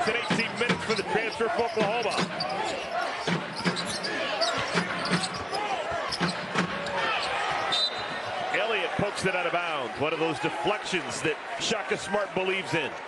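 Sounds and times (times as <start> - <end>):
sneakers squeaking: 0.0 - 8.5.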